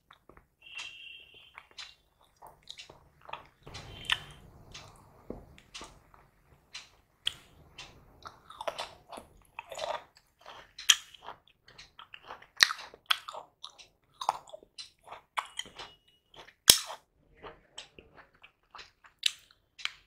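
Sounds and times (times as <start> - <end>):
mouth smacks and clicks: 0.0 - 5.0, 8.2 - 17.0
person chewing with wet mouth sounds: 0.0 - 20.0.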